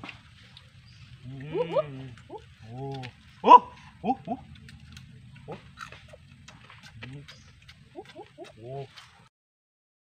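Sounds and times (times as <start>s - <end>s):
people grunting while eating: 1.2s - 4.6s.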